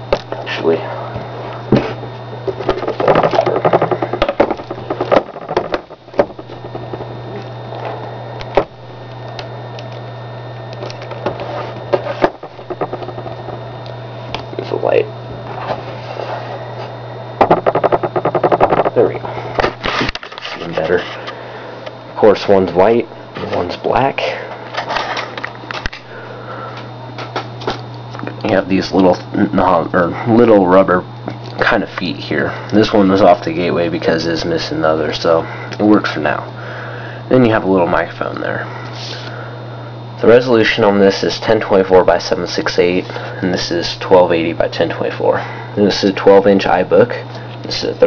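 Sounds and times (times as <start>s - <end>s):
steady low hum: 0.0s - 48.0s
laptop handling rubbing and clicking: 11.0s - 13.6s, 19.7s - 21.3s.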